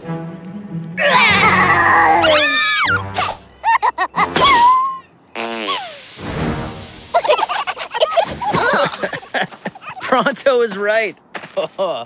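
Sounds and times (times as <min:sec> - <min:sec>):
hiss: 0:05.4 - 0:09.8.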